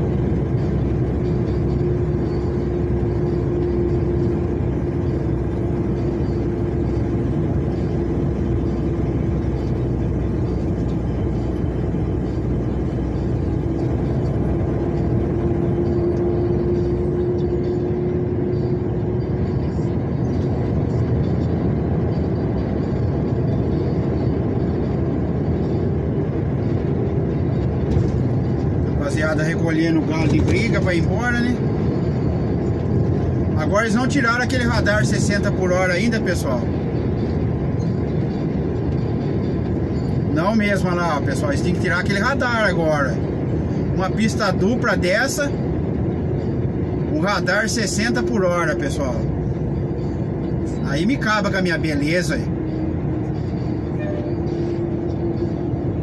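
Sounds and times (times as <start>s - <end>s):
vehicle engine and tyre noise: 0.0s - 56.0s.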